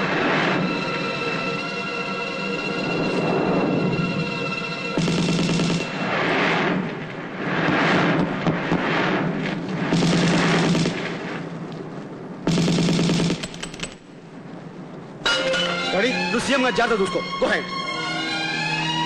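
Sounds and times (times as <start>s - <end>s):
soundtrack music: 0.0s - 6.0s, 15.2s - 19.0s
rushing swells of noise: 0.0s - 12.4s
machine-gun fire bursts: 5.0s - 6.1s, 9.8s - 11.3s, 12.5s - 14.0s.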